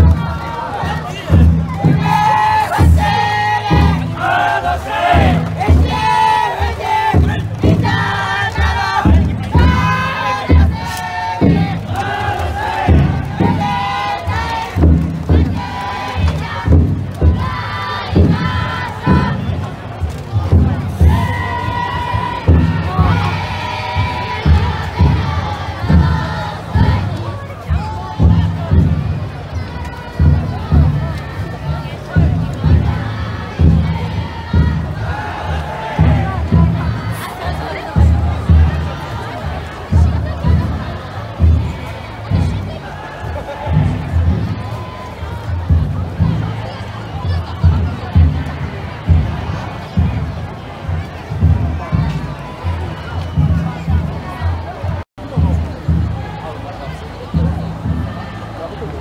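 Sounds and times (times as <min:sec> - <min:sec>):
big drum beating: 0:00.0 - 0:59.0
crowd chanting and shouting: 0:00.0 - 0:59.0.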